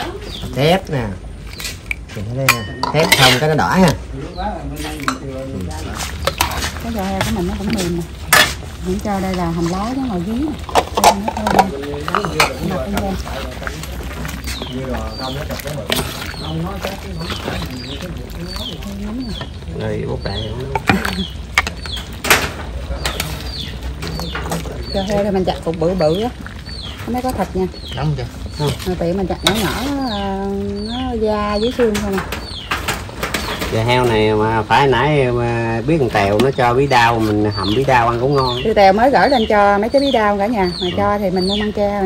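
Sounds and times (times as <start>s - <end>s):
bird chirping: 0.0s - 42.0s
dishes clinking: 1.9s - 4.0s, 4.9s - 5.5s, 8.3s - 8.7s, 10.6s - 13.1s
low talk: 2.1s - 32.3s.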